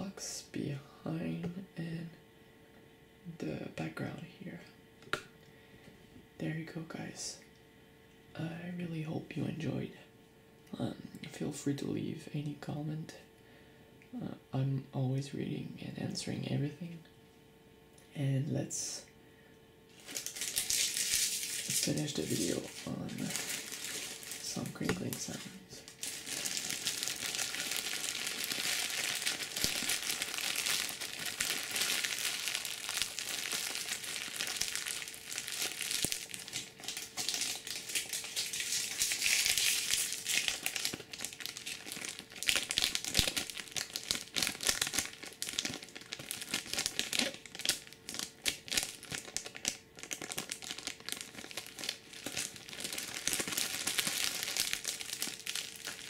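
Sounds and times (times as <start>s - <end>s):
plastic wrappers crinkling: 19.9s - 56.0s.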